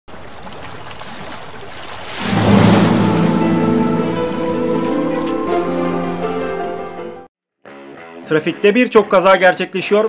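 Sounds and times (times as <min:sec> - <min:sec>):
rushing whoosh: 0:02.2 - 0:06.4
loud hit: 0:02.2 - 0:06.5
low held chord: 0:02.2 - 0:07.3.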